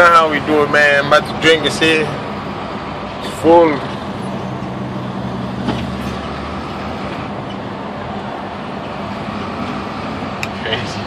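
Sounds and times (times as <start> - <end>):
road noise inside a car: 0.0 - 11.0.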